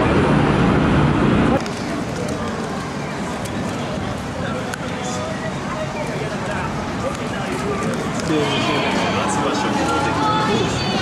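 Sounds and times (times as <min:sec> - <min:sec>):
crowd voices: 0:00.0 - 0:11.0
traffic hum: 0:00.0 - 0:11.0.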